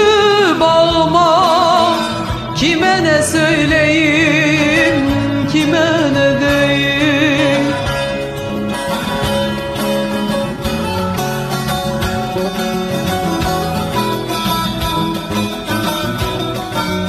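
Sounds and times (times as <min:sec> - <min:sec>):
plucked string melody: 0:00.0 - 0:17.0
steady bass line: 0:00.0 - 0:17.0.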